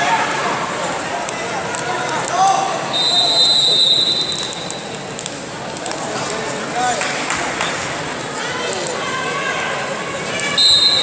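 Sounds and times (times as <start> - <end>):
people shouting and chattering: 0.0 - 11.0
whistle long high note: 3.0 - 4.6.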